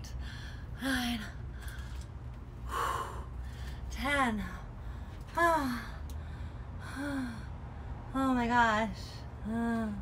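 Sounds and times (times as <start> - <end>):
steady low hum: 0.0 - 10.0
woman breathing hard: 0.1 - 3.9.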